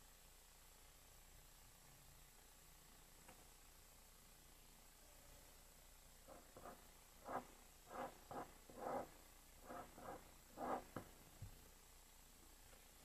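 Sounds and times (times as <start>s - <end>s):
pen drawing on paper: 6.2s - 11.2s.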